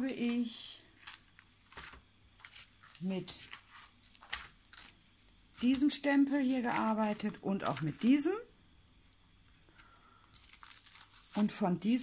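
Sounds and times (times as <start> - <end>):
plastic sheet crinkling: 0.0 - 8.5, 9.7 - 12.0.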